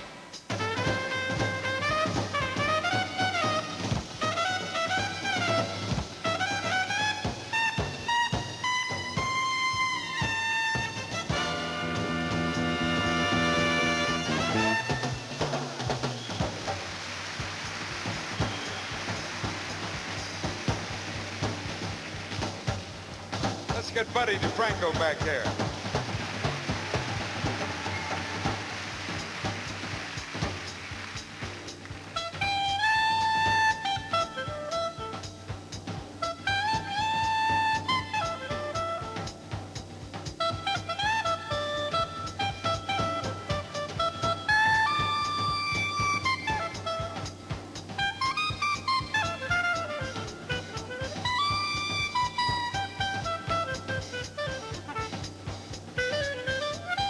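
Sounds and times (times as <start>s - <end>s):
swing jazz clarinet solo: 0.0s - 30.8s, 32.0s - 57.0s
drum kit beat: 0.0s - 57.0s
applause: 14.9s - 23.0s, 23.9s - 33.4s.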